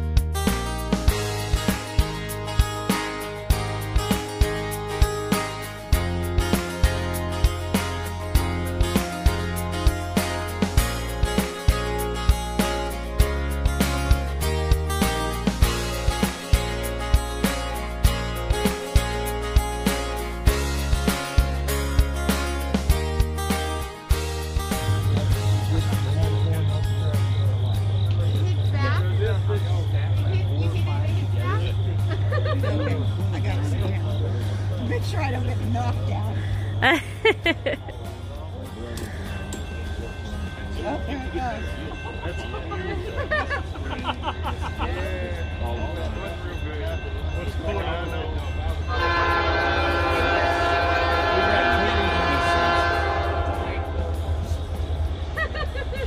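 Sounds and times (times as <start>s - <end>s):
diesel locomotive droning: 24.7s - 36.8s, 37.9s - 56.0s
people's voices: 24.7s - 56.0s
train rumble: 24.8s - 56.0s
locomotive air horn blast: 48.9s - 54.5s.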